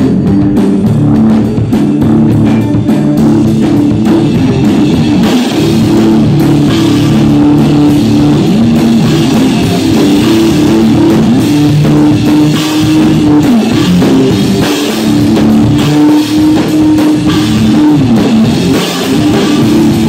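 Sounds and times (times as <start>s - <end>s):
bass guitar: 0.0s - 20.0s
drum kit: 0.0s - 20.0s
electric guitar: 0.0s - 20.0s.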